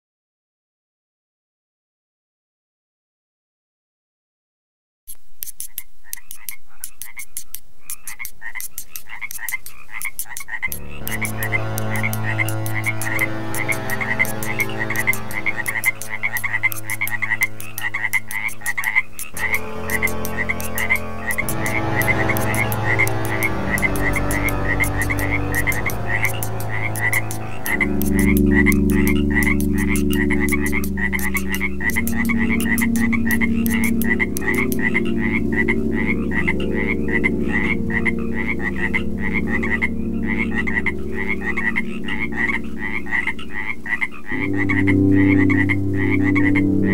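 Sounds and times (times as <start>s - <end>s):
frogs croaking: 5.7s - 46.9s
electronic drone chords: 10.6s - 46.9s.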